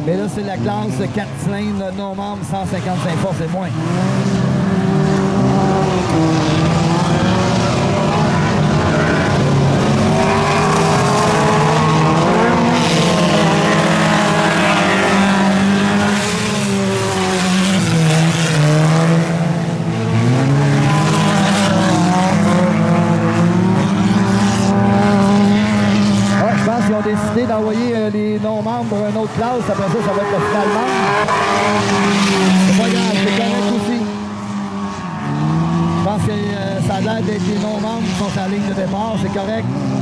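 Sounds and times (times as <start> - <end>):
car engines revving hard: 0.0 - 40.0.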